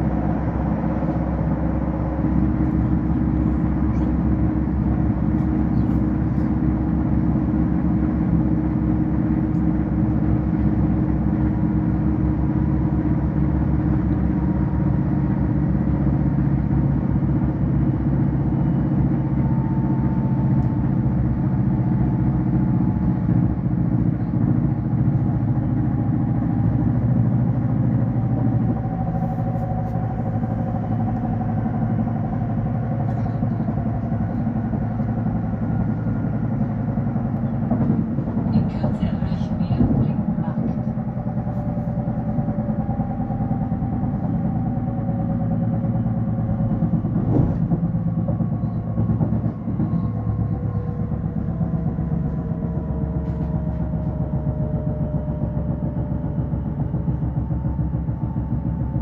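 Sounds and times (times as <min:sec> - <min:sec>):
train wheels rumbling on track: 0:00.0 - 0:59.0.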